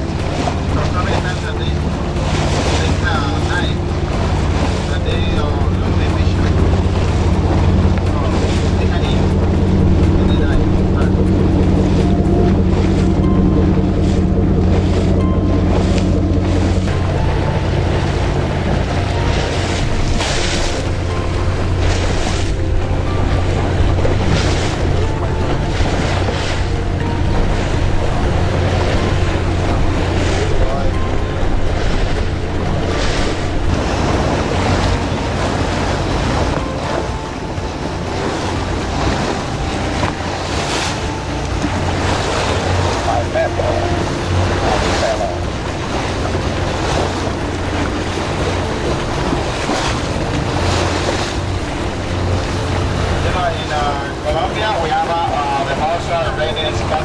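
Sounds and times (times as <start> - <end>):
motorboat engine humming: 0.0 - 57.0
water rushing along hull: 0.0 - 57.0.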